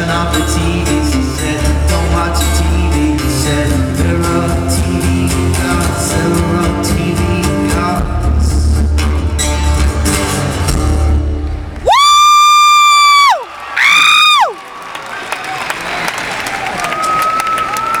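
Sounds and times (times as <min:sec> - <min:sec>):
live rock band playing: 0:00.0 - 0:11.8
crowd cheering: 0:11.4 - 0:18.0.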